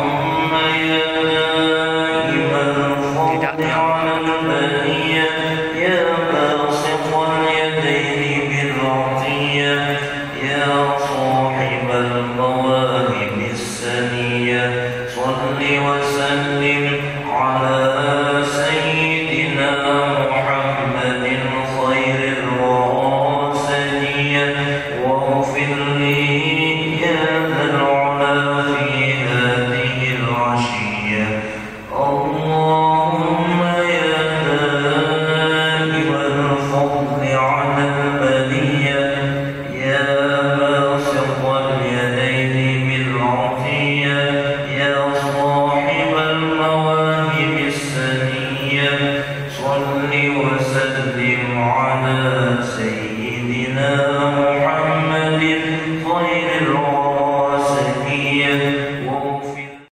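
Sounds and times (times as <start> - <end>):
congregation chanting prayer: 0.0 - 59.9.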